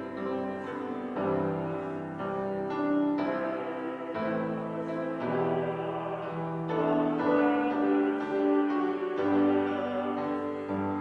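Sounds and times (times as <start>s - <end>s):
grand piano playing slow chords: 0.0s - 11.0s.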